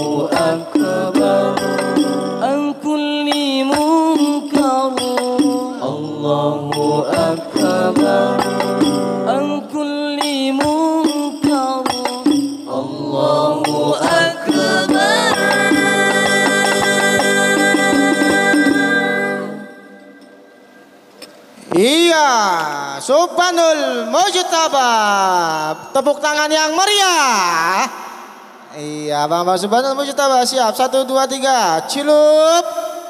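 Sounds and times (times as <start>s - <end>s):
frame drums beaten: 0.0s - 2.6s, 3.3s - 19.6s
male voices singing together: 0.0s - 20.1s.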